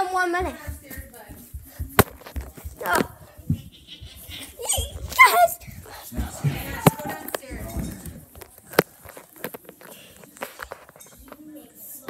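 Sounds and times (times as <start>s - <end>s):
footsteps: 0.0s - 11.5s.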